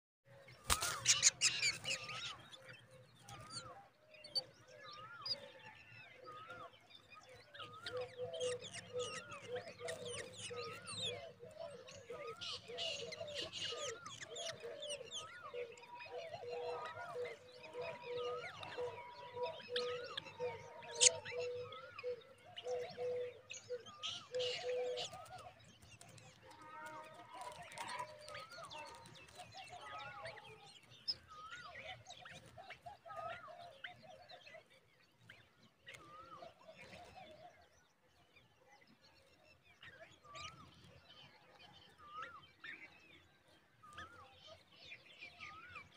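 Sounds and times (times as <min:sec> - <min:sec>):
birds whistling and chirping: 0:00.4 - 0:26.6, 0:27.4 - 0:37.8, 0:39.8 - 0:45.9.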